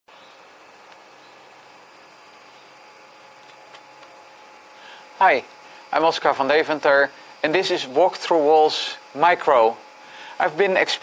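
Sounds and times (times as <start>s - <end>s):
faint hum: 0.1s - 11.0s.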